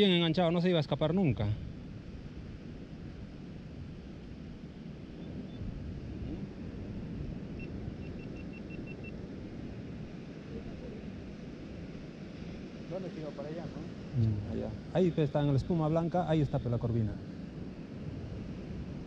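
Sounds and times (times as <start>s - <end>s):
surf and wind on rocky shore: 0.0s - 19.0s
faint high beeps: 5.2s - 5.7s, 7.5s - 9.2s.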